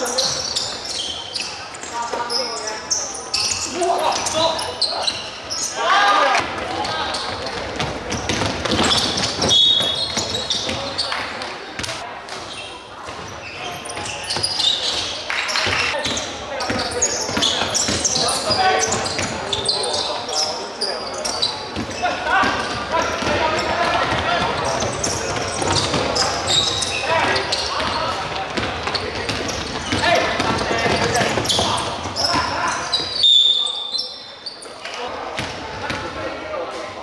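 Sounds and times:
players shouting: 5.6s - 7.2s
basketball bouncing on wooden court: 7.2s - 10.9s, 21.8s - 32.6s.

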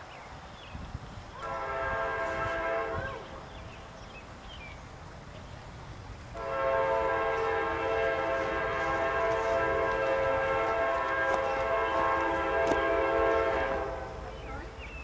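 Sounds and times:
locomotive air horn blast: 1.4s - 3.4s, 6.3s - 14.4s.

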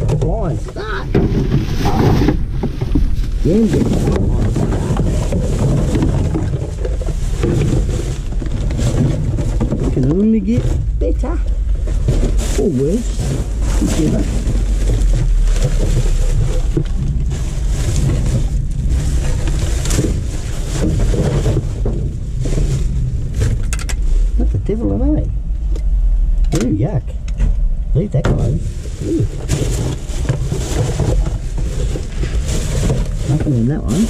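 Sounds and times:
plastic garbage bags rustling: 0.0s - 25.6s, 28.4s - 34.0s
steady low rumble: 0.0s - 34.0s
voice murmuring: 0.6s - 1.2s.

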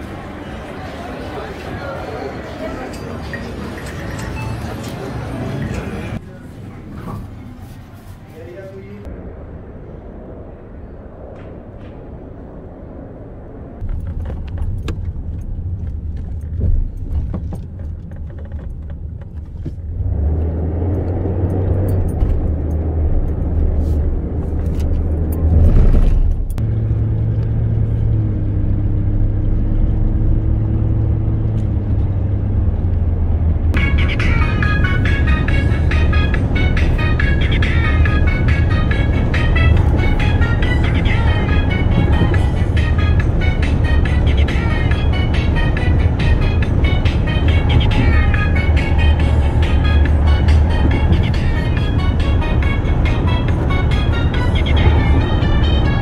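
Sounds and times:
music playing: 0.0s - 6.2s, 33.8s - 56.0s
engine and tyre rumble: 0.0s - 56.0s.

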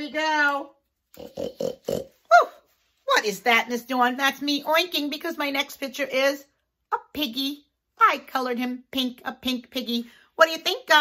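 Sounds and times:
woman oinking like a pig: 1.1s - 2.6s.

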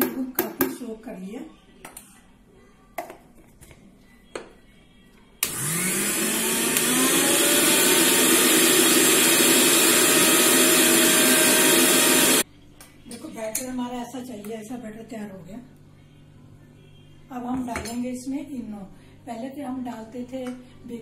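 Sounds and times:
mixer grinder motor whine: 5.4s - 12.4s.

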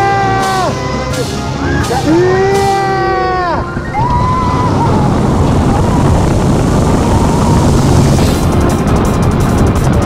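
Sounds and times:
roller coaster rumble on track: 0.6s - 10.0s
wind rushing over microphone: 2.1s - 10.0s.

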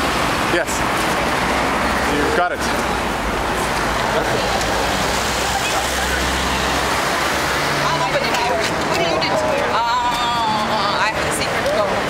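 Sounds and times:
rushing street traffic: 0.0s - 12.0s
background voices talking: 0.3s - 12.0s.

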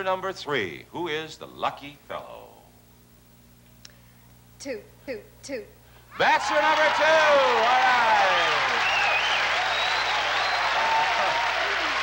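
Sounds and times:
audience applauding: 6.2s - 12.0s.

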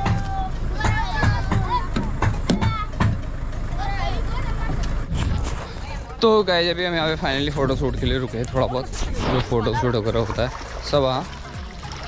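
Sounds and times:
voices calling: 0.0s - 11.8s
vehicle rumbling slowly: 0.0s - 12.0s.

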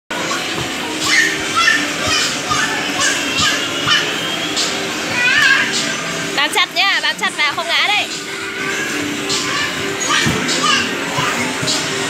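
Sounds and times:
background music: 0.1s - 12.0s
children shouting at play: 0.2s - 4.4s, 5.0s - 5.8s, 8.6s - 11.6s.

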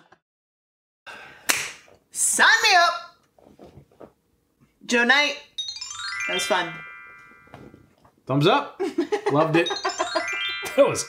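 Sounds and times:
sharp crack: 1.5s - 1.8s.

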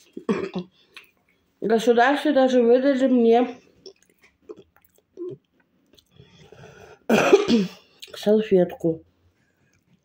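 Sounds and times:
woman coughing: 0.2s - 0.7s, 7.1s - 7.8s
faint chewing mouth sounds: 3.6s - 6.6s, 9.4s - 10.0s.

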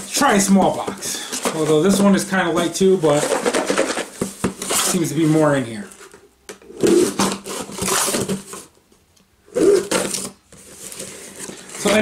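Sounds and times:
packing tape peeling off cardboard: 6.8s - 8.5s.

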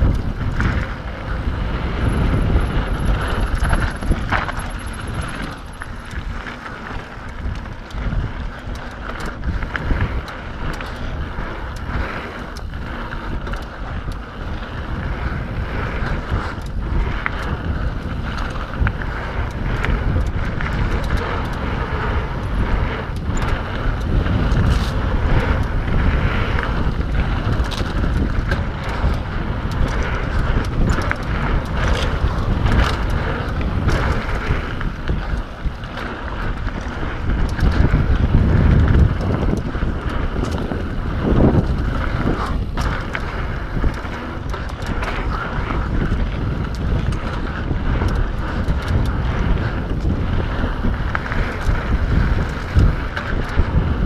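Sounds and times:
bike rattling and knocking: 0.0s - 54.0s
tyres running over dirt: 0.0s - 54.0s
wind rushing over microphone: 0.0s - 54.0s.

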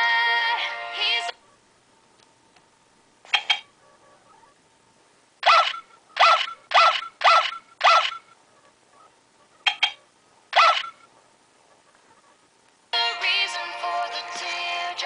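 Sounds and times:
robot toy dog electronic barks: 3.3s - 4.6s, 5.4s - 8.3s, 9.0s - 11.1s.

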